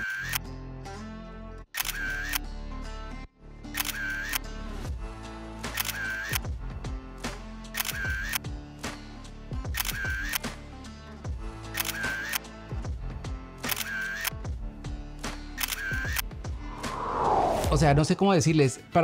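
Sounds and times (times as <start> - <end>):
camera shutter clicks: 0.0 - 0.4, 1.8 - 2.4, 3.8 - 4.4, 5.7 - 6.4, 7.7 - 8.4, 9.8 - 10.5, 11.7 - 12.5, 13.6 - 14.4, 15.6 - 16.2
background music: 0.0 - 19.0.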